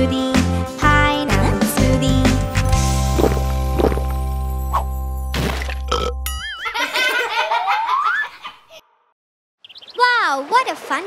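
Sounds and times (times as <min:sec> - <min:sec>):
children's song: 0:00.0 - 0:03.5
cartoon characters laughing: 0:06.4 - 0:09.0.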